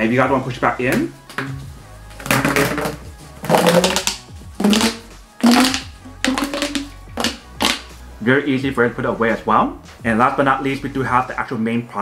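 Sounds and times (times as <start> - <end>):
background music: 0.0 - 12.0
air hose crinkling and rustling: 2.1 - 7.9.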